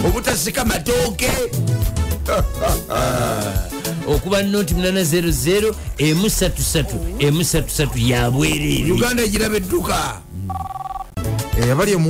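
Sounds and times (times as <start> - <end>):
telephone ringing: 10.5 - 11.2.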